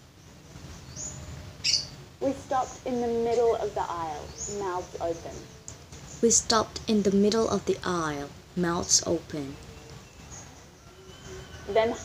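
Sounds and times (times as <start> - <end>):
high-pitched bird chirps: 1.0 - 1.9.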